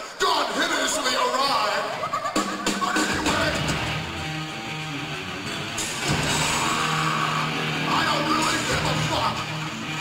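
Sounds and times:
heavy metal band playing live: 1.8 - 10.0.

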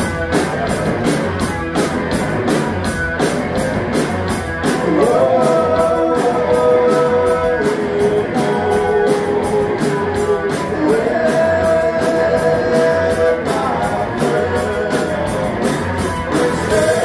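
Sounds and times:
drum kit: 0.0 - 17.0
electric guitars sustained notes: 0.0 - 17.0.

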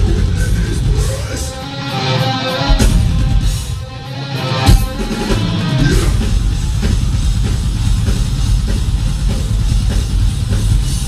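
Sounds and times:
distorted electric guitars: 0.0 - 11.0
pounding drum kit: 0.0 - 11.0.

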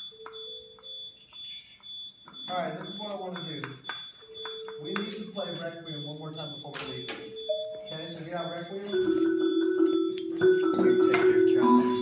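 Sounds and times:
mallet percussion held notes: 8.9 - 12.0.

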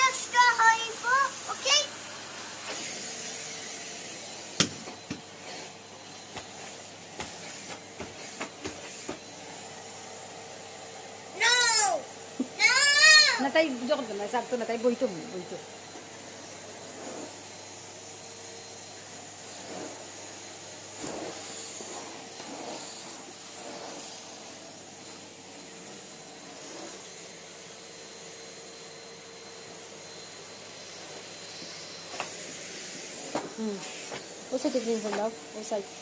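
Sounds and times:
vacuum cleaner running: 0.0 - 36.0.

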